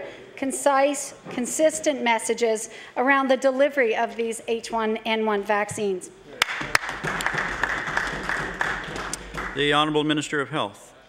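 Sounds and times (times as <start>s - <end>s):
crowd applauding: 6.4s - 10.1s.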